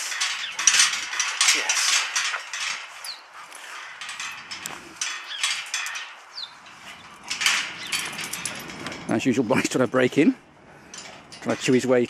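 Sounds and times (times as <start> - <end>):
dogs rattling metal gate: 0.0 - 12.0.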